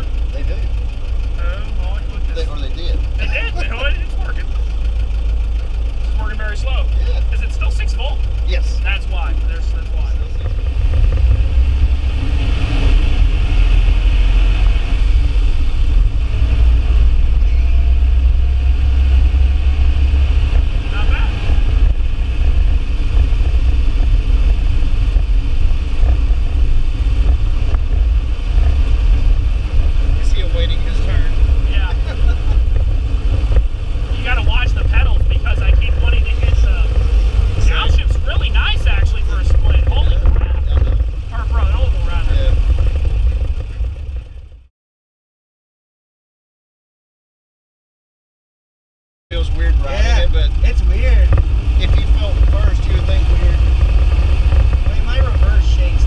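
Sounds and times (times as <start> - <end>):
car engine rumble in cabin: 0.0 - 44.7, 49.3 - 56.0.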